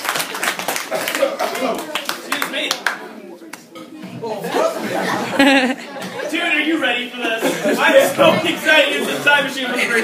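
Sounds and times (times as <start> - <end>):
audience clapping: 0.0 - 3.6.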